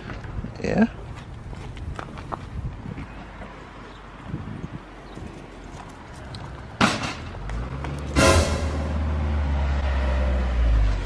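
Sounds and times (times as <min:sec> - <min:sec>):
footsteps on paving and gravel: 0:00.0 - 0:06.8.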